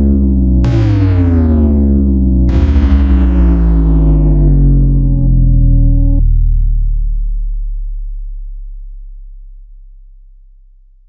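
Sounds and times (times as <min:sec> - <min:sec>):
deep electronic bass tone: 0:00.0 - 0:11.0.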